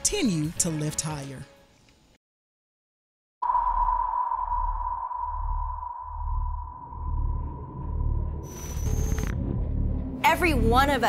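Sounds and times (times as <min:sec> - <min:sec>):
high ringing tone: 0:03.4 - 0:09.4
deep low pulses: 0:03.4 - 0:10.9.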